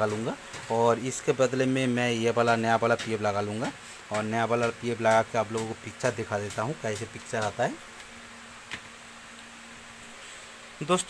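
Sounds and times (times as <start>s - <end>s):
background hiss: 0.0s - 11.0s
man speaking: 10.8s - 11.0s.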